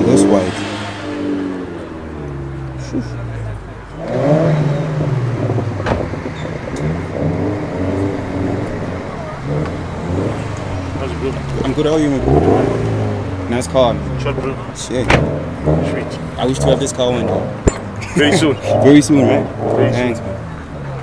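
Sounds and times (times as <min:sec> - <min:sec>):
people talking: 0:00.0 - 0:01.2, 0:02.6 - 0:06.0, 0:07.7 - 0:21.0
car engine idling: 0:00.0 - 0:21.0.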